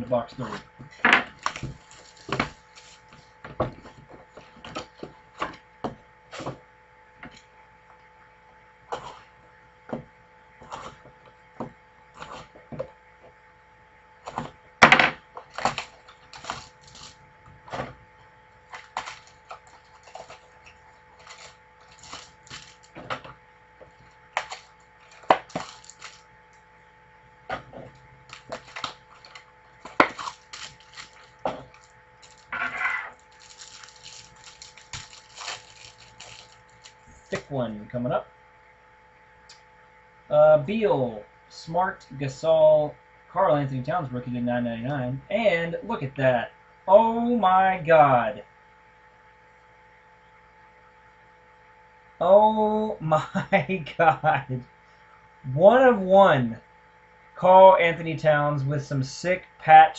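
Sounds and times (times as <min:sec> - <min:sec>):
plastic wrapper crinkling: 0:01.3 - 0:03.3, 0:15.5 - 0:17.2, 0:18.7 - 0:23.1, 0:24.0 - 0:26.3, 0:28.2 - 0:37.4.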